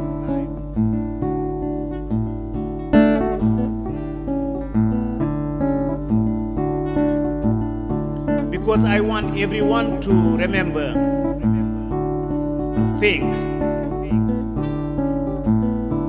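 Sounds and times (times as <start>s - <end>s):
acoustic guitar plucking: 0.0s - 16.0s.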